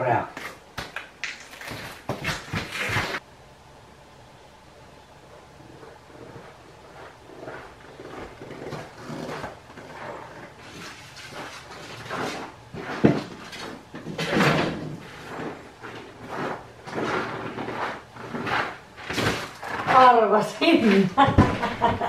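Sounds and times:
rustling: 0:05.3 - 0:22.0.

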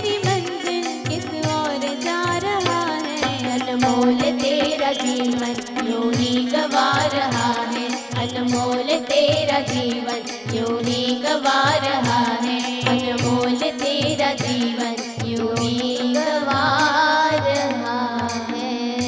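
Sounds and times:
keyboards and harmonium drone: 0:00.0 - 0:19.0.

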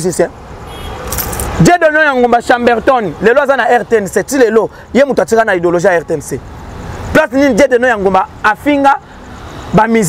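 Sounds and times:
man speaking animatedly: 0:00.0 - 0:00.4, 0:01.5 - 0:10.0.

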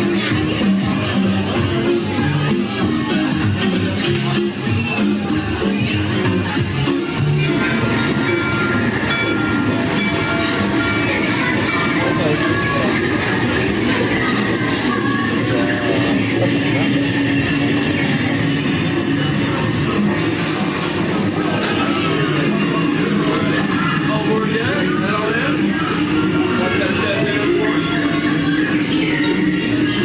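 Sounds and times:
faint background music: 0:00.0 - 0:30.0
ride station din: 0:00.0 - 0:30.0.

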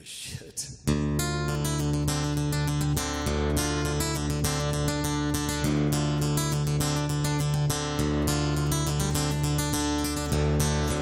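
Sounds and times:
acoustic guitar strumming: 0:00.9 - 0:11.0.

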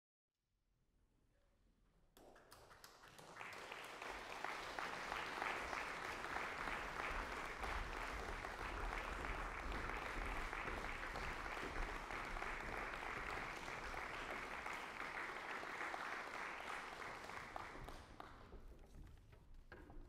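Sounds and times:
audience applauding: 0:02.2 - 0:18.7.

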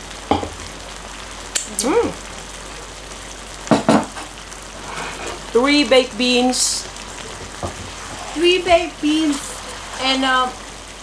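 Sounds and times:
food sizzling in a frying pan: 0:00.0 - 0:11.0
short scrapes in a pan: 0:04.8 - 0:05.4.

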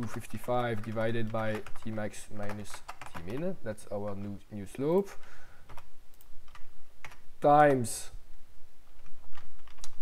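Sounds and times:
keyboard keystrokes: 0:09.3 - 0:10.0.

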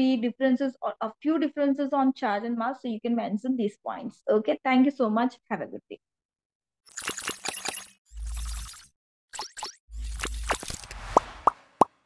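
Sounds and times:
quick swishes: 0:10.5 - 0:11.9
short rising pops: 0:10.5 - 0:12.0.

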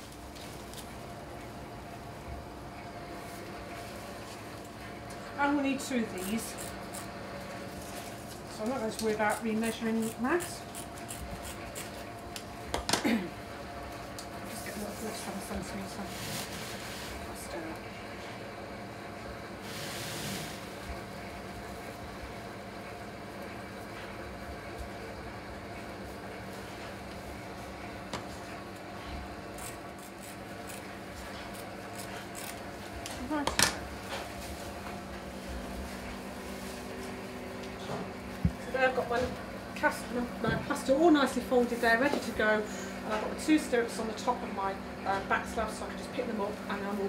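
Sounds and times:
room hum: 0:00.0 - 0:47.0
scissors snipping: 0:31.4 - 0:32.6.

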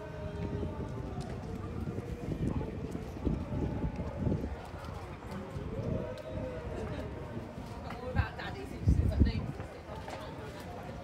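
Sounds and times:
footsteps on stone paving: 0:00.0 - 0:11.0.

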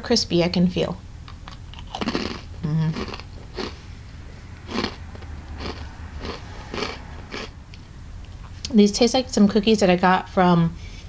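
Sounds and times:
person chewing crispy cookie: 0:01.3 - 0:03.9, 0:04.6 - 0:07.6.

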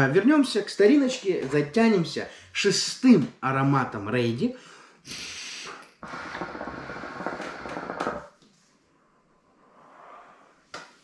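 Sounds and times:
breathy exhale: 0:04.6 - 0:08.0
hookah water bubbling: 0:06.0 - 0:08.3.

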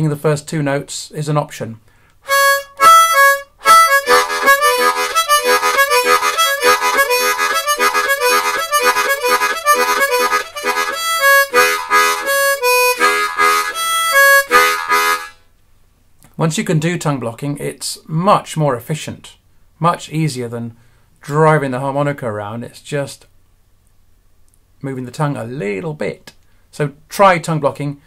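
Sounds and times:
blues harmonica: 0:02.2 - 0:15.4.

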